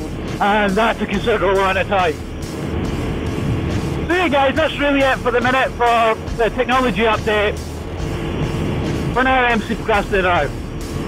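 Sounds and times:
motorcycle engine: 0.0s - 11.0s
motorcycle road noise: 0.0s - 11.0s
wind rush: 0.0s - 11.0s.

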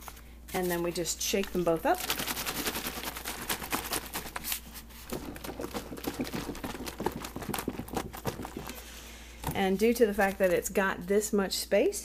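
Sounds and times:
plastic jugs shaken with liquid: 1.9s - 9.0s.

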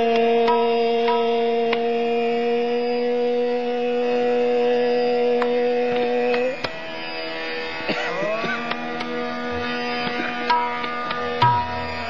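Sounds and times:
voice holding a long note: 0.0s - 6.6s
harmonium: 0.0s - 12.0s.

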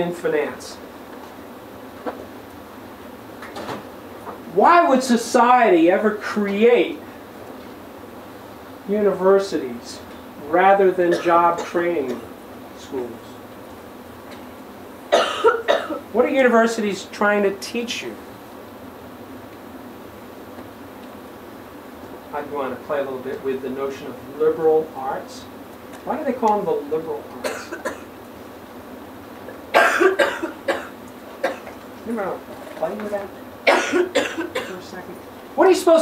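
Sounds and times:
man coughing: 11.1s - 11.8s, 15.1s - 16.1s, 27.4s - 28.1s, 29.7s - 31.7s, 33.7s - 34.8s.

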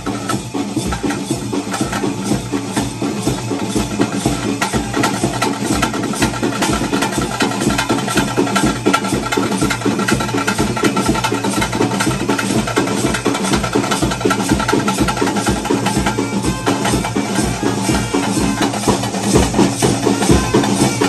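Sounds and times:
drum ensemble playing fast rhythm: 0.0s - 21.0s
other instruments playing: 0.0s - 21.0s.

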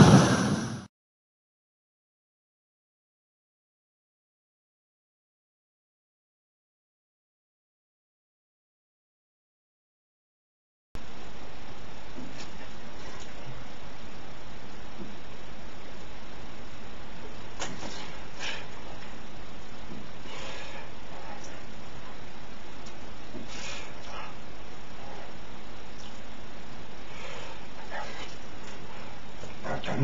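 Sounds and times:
short rush of noise: 0.0s - 0.9s
steady hiss: 11.0s - 30.0s.

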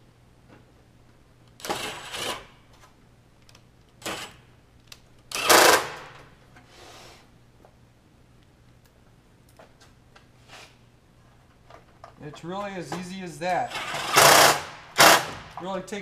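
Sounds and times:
cordless drill driving screws: 1.6s - 2.5s, 5.3s - 6.1s, 13.6s - 15.4s.

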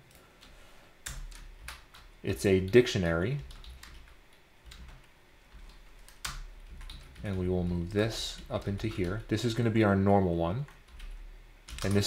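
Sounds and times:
keystrokes on computer keyboard: 0.1s - 2.1s, 3.4s - 9.4s, 10.6s - 12.0s.

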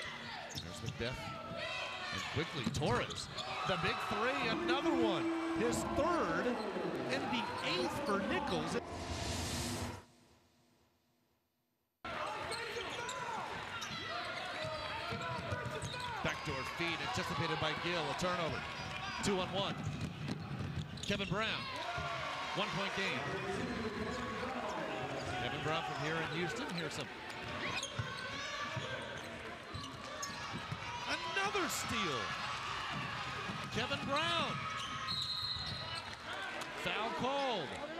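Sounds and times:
crowd noise: 0.0s - 9.0s
sneakers squeaking: 0.2s - 8.6s, 12.4s - 16.3s, 19.8s - 21.4s, 25.2s - 31.0s, 33.5s - 36.2s
whooshing transition effect: 8.8s - 10.1s
sneakers squeaking on hardwood: 26.6s - 30.8s.

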